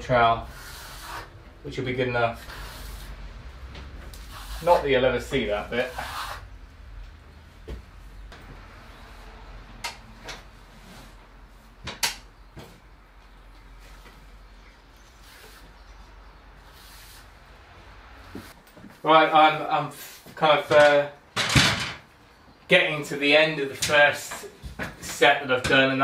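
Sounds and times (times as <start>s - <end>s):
trowel scraping plaster: 0.4s - 1.3s, 5.7s - 6.4s.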